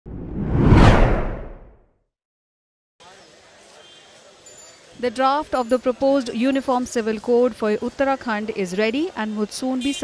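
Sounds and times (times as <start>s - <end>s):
whoosh sweep: 0.1s - 1.7s.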